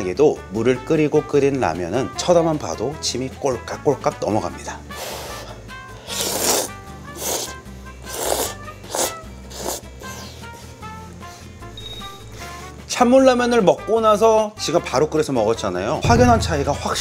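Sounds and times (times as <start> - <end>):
soft background music: 0.0 - 17.0
person slurping noodles: 6.0 - 10.3.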